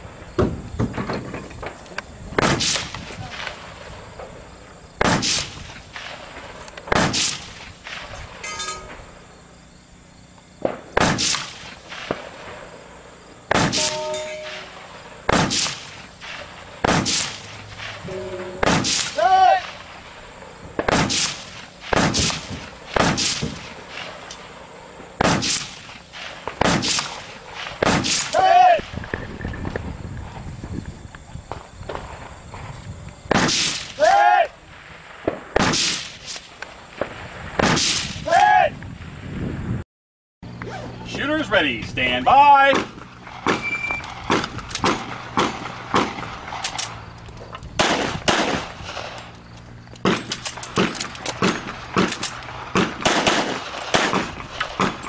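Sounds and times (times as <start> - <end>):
rifle shots: 2.4 - 3.9, 5.0 - 9.2, 10.6 - 12.8, 13.5 - 24.6, 25.2 - 29.2, 33.3 - 34.0, 34.9 - 38.2, 42.7 - 47.1, 47.8 - 49.4, 50.0 - 55.0
short ringing tone: 8.4 - 9.0, 13.8 - 14.7, 43.6 - 44.1.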